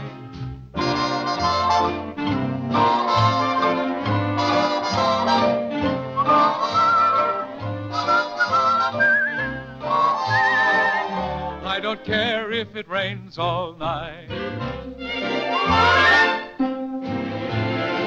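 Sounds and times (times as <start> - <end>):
swing band playing: 0.0 - 18.0.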